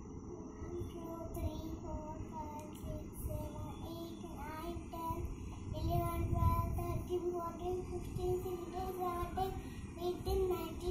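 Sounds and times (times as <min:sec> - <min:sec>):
low background hum: 0:00.0 - 0:10.9
child singing: 0:00.6 - 0:10.9.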